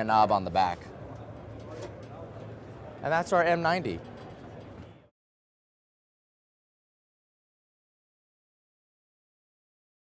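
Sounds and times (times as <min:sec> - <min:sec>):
faint background voices: 0:00.7 - 0:05.1.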